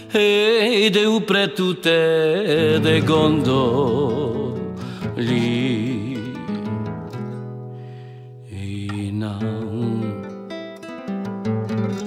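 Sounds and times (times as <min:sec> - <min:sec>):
person singing: 0:00.0 - 0:06.7, 0:08.4 - 0:10.5
nylon-string guitar playing: 0:02.5 - 0:12.0.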